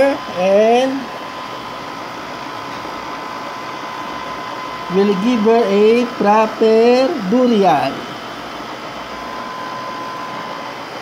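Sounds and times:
faint high whine: 0.0s - 11.0s
machine whirring hiss: 0.0s - 11.0s.

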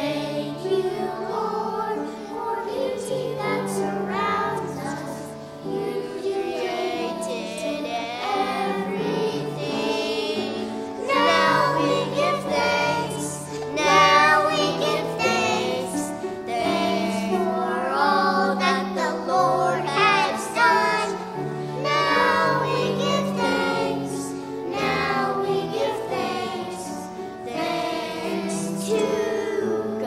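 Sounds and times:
children singing into a microphone: 0.0s - 30.0s.

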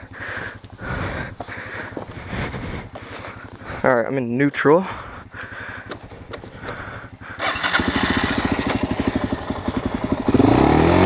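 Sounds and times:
person breathing hard: 0.0s - 4.0s, 4.8s - 10.2s.

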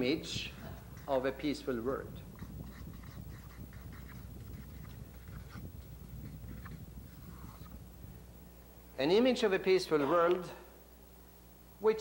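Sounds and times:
low steady hum: 0.0s - 12.0s
marker squeaking on paper: 0.9s - 7.8s.

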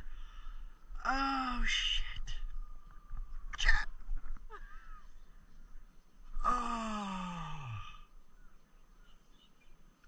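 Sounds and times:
man groaning: 6.4s - 8.0s.

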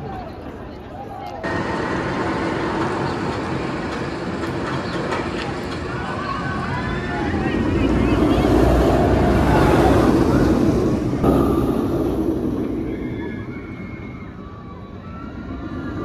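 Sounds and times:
roller coaster rumbling on track: 0.0s - 16.0s.

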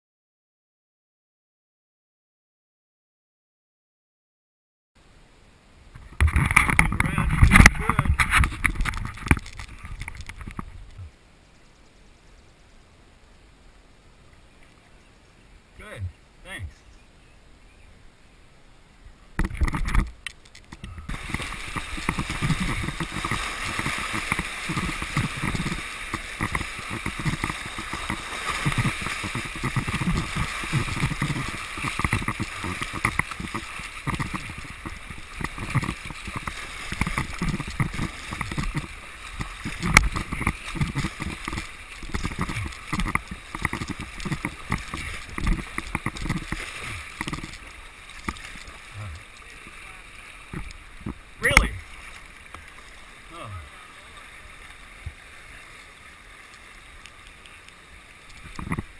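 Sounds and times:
kayak paddle strokes: 6.0s - 11.2s, 19.3s - 58.9s
river water rushing: 12.9s - 58.9s.

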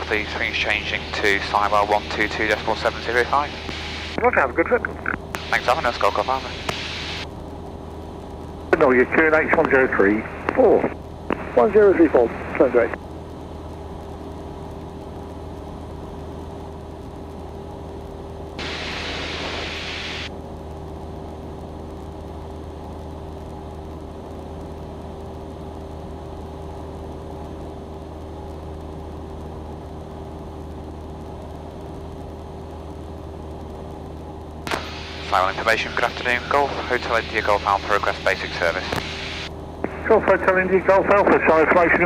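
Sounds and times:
airplane engine drone: 0.0s - 42.0s.

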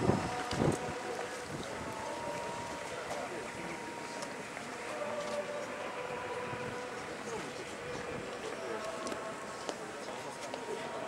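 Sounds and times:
wind rumbling on microphone: 0.0s - 3.6s.

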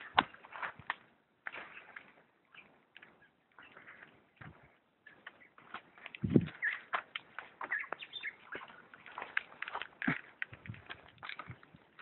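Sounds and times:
leaves and twigs snapping: 5.2s - 12.0s.

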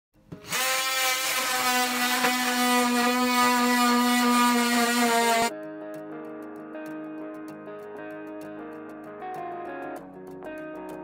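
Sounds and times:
power tool running: 0.3s - 5.5s
guitar music: 1.3s - 11.0s.

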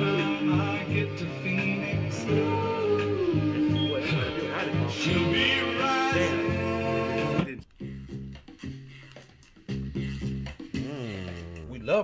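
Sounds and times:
soul record singing: 0.0s - 7.5s.

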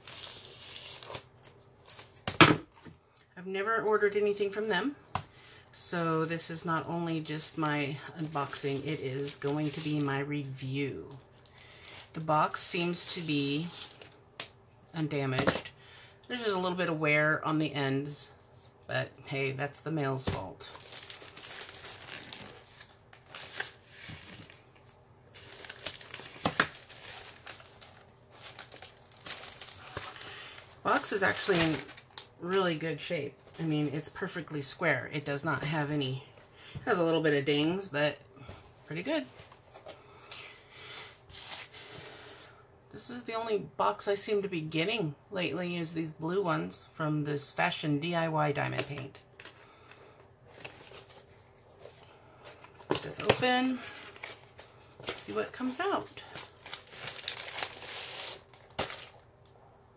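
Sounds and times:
plastic mailer bag crinkling: 7.4s - 14.2s, 20.2s - 32.6s, 50.5s - 59.4s.

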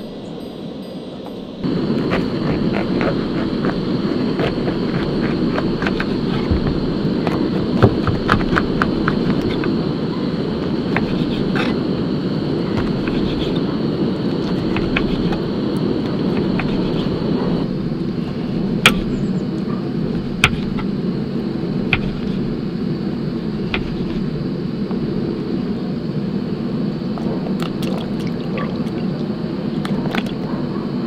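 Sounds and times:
burning wood popping: 1.6s - 25.4s
wood fire rumbling: 1.6s - 30.5s.

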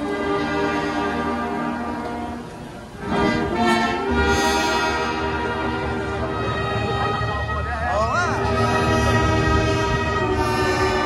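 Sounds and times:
brass band sustained chord: 0.0s - 11.0s.

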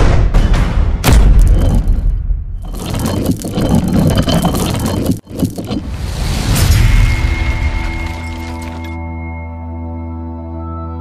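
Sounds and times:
scraping rumble: 1.4s - 8.9s.

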